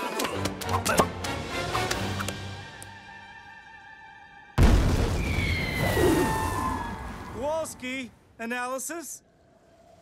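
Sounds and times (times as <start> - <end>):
explosion with crashing and splashing: 4.6 - 7.4.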